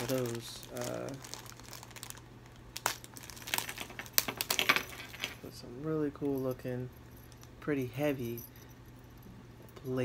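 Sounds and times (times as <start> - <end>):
packaging crinkling: 0.0 - 5.5.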